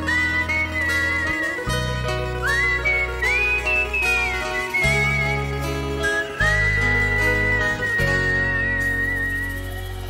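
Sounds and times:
live band playing: 0:00.0 - 0:10.0
whistled melody: 0:00.0 - 0:10.0.

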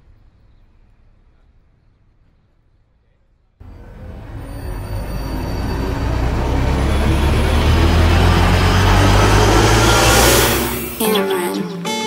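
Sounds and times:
deep rumbling build-up effect: 0:03.6 - 0:11.2.

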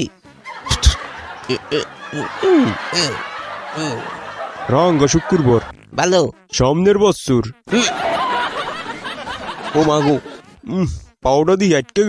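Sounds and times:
man making comic noises: 0:00.0 - 0:04.2, 0:07.6 - 0:08.0, 0:09.8 - 0:11.1.

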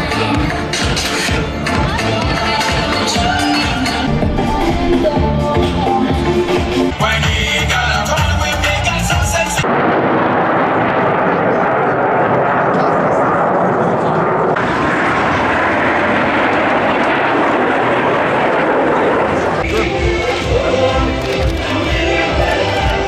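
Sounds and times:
music: 0:00.0 - 0:09.6, 0:19.6 - 0:23.0
jet aircraft roar: 0:00.0 - 0:23.0.

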